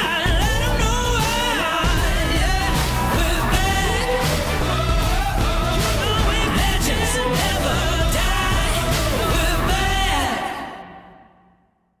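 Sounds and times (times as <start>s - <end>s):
pop-rock song: 0.0s - 11.0s.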